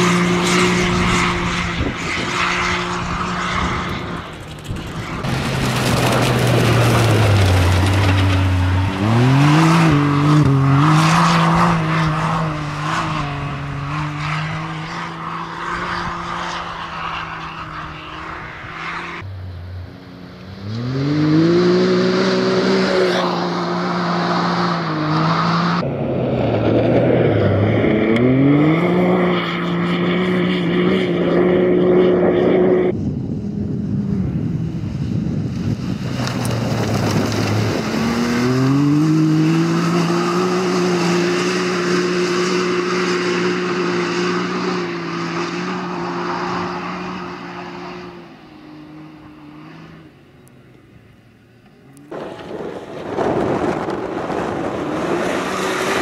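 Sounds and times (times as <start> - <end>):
engine revving at full throttle: 0.0 - 4.1, 5.2 - 19.3, 20.5 - 25.9, 26.6 - 33.0, 36.4 - 50.2, 51.9 - 56.0
tyres on gravel: 3.5 - 10.8, 36.0 - 40.4, 51.6 - 56.0.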